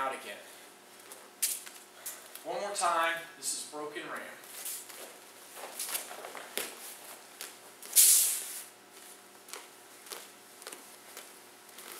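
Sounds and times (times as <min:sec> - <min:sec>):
loud hiss: 0:07.9 - 0:08.7.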